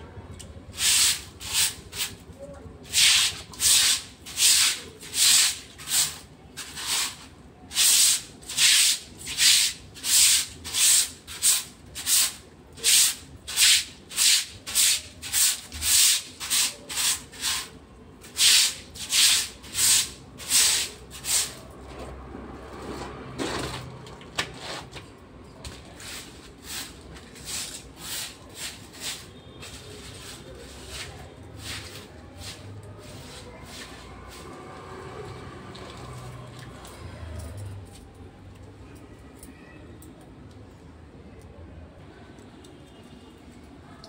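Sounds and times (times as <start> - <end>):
broom sweeping wet ground: 0.7 - 21.8, 25.7 - 36.5.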